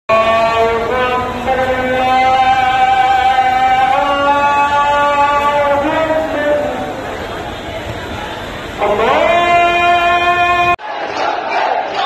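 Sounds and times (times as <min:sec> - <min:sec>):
crowd chanting in unison: 0:05.8 - 0:12.0.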